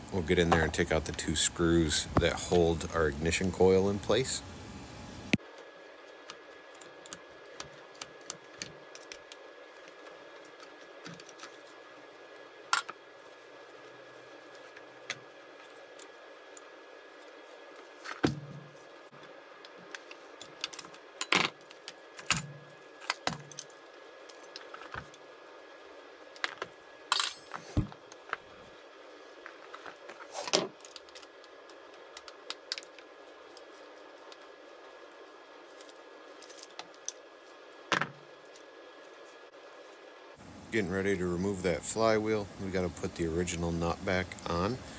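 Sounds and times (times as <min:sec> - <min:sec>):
faint background hiss: 0:40.3 - 0:44.9.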